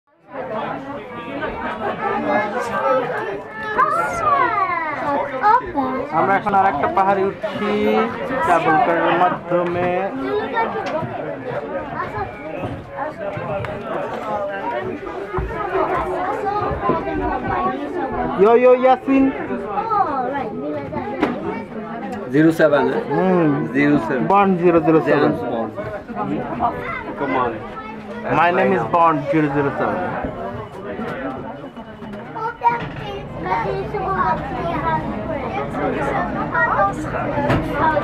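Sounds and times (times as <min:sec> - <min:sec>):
people talking at once: 0:00.1 - 0:38.0
people chatting: 0:00.3 - 0:38.0.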